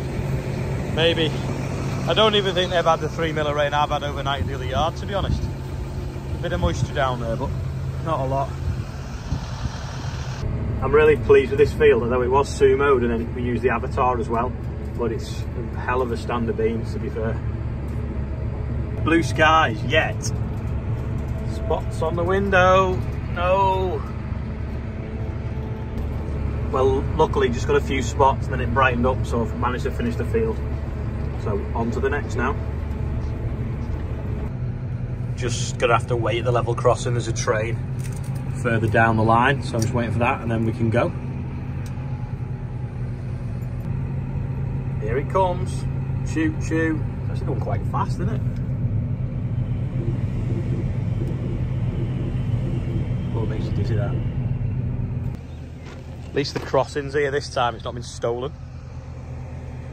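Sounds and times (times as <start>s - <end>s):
passenger train passing: 0.0s - 10.9s, 39.5s - 55.6s
low engine rumble in cab: 0.0s - 59.9s.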